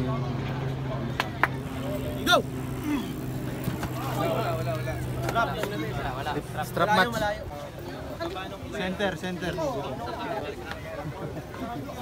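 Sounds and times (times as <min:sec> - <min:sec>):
steady low hum: 0:00.2 - 0:07.8
men's voices calling out: 0:01.6 - 0:10.3.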